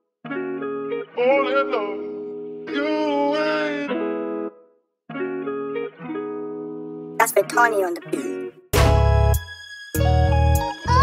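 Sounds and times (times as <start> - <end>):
plucked guitar chords: 0.2 - 9.4.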